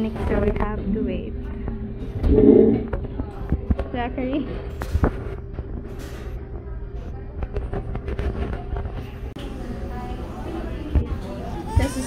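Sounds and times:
low hum: 0.8 - 3.2.

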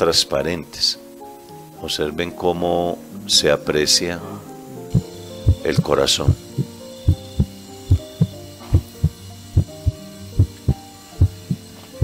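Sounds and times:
soft held music chords: 0.0 - 12.0.

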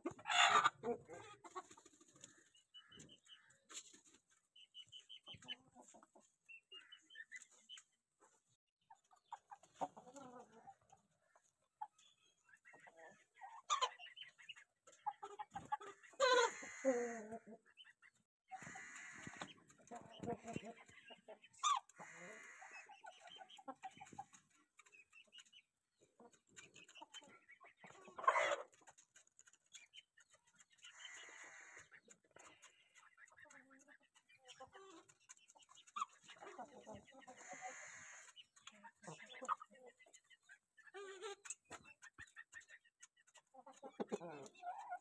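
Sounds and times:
chickens clucking and calling: 0.0 - 45.0.

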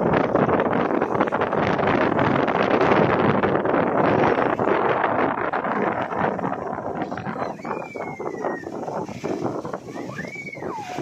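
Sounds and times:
wind buffeting microphone: 0.0 - 11.0
high whistle-like tone: 9.9 - 11.0.

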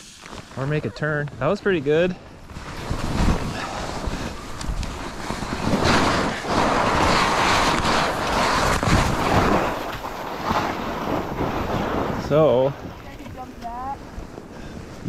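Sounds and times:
skis hissing through snow: 0.0 - 1.2, 2.5 - 14.4
wind rushing over microphone: 0.0 - 15.0.

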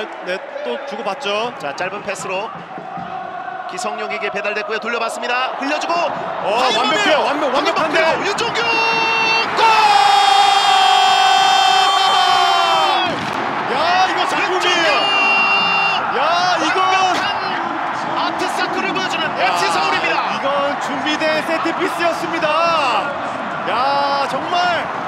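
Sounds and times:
stadium crowd cheering: 0.0 - 25.0
excited shouted commentary: 3.3 - 24.9
commentator shouting: 18.3 - 23.0.

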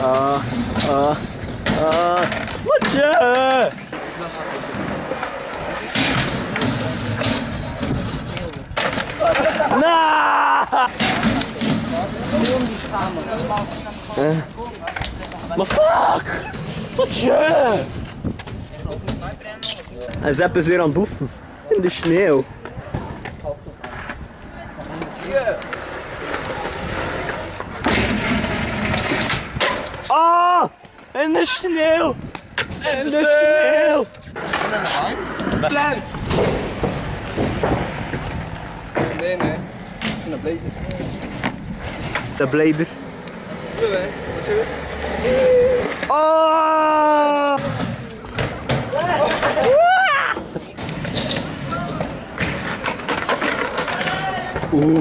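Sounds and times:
skateboard clacks: 0.0 - 9.9, 10.8 - 15.9, 30.8 - 46.4, 47.6 - 55.0
skateboard rolling on concrete: 0.0 - 55.0.

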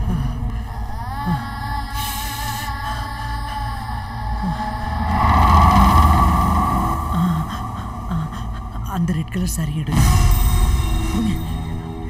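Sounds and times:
rumble and whoosh: 4.0 - 9.7.

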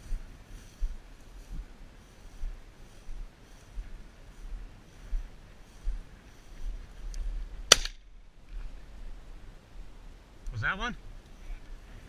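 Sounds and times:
shotgun shot with echo: 7.7 - 8.0.

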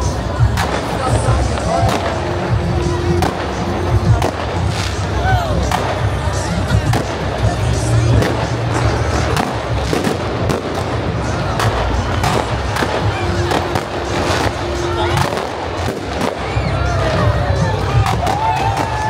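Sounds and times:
music: 0.0 - 19.0
people's voices: 0.0 - 19.0
fireworks bangs: 0.1 - 19.0.

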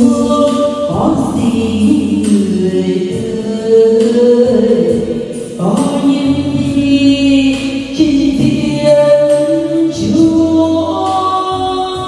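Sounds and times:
karaoke backing track: 0.0 - 12.0
woman singing a slow ballad: 0.0 - 12.0.

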